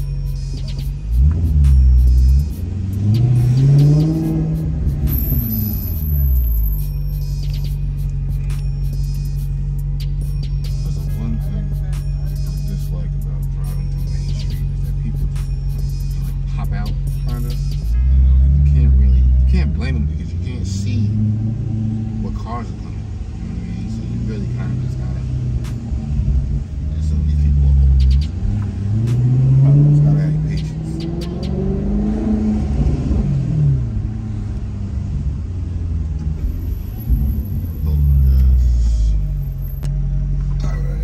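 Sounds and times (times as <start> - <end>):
car engine from inside cabin: 0.0 - 41.0.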